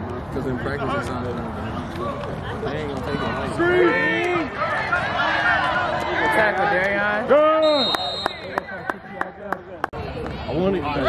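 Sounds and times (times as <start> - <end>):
faint crowd chatter: 0.0 - 11.0
referee whistle: 7.5 - 8.6.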